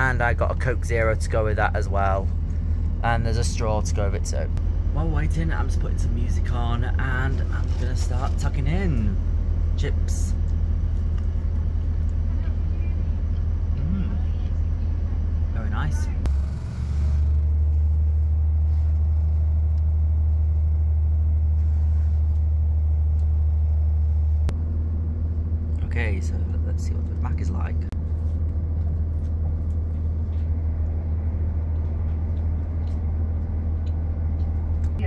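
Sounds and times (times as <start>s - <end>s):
train diesel engine rumble: 0.0s - 35.0s.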